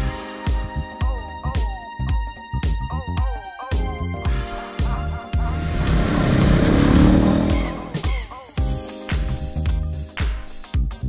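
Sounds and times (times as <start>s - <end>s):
background music: 0.0s - 11.0s
motorcycle engine revving: 5.4s - 8.2s.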